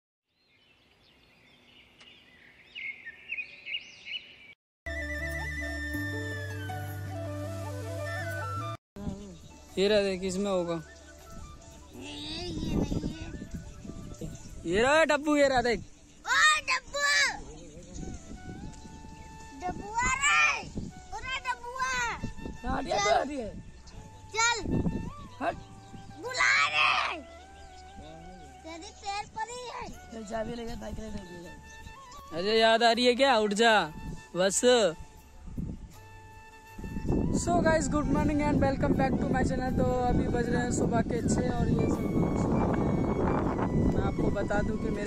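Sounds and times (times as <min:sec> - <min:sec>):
birds chirping and whistling: 0:00.4 - 0:45.0
flute music: 0:04.9 - 0:15.4, 0:16.8 - 0:45.0
children calling out: 0:26.2 - 0:27.3.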